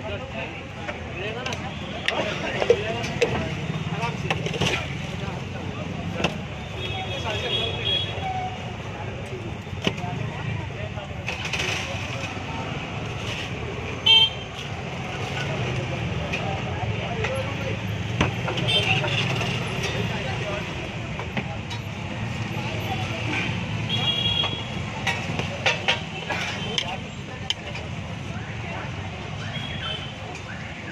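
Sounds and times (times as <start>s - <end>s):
street traffic: 0.0s - 30.9s.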